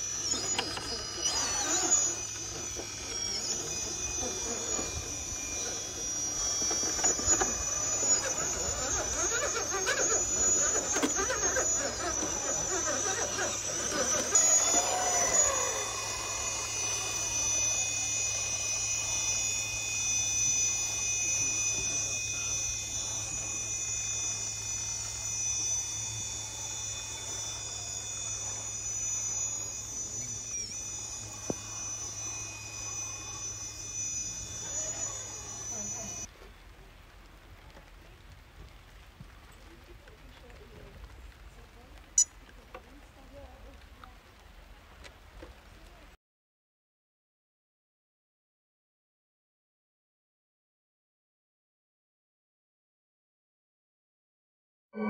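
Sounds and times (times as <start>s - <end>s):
electric motor whining: 0.0s - 36.3s.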